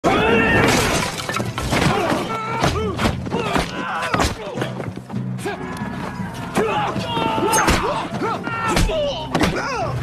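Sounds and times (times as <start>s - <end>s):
voices shouting: 1.8s - 10.0s.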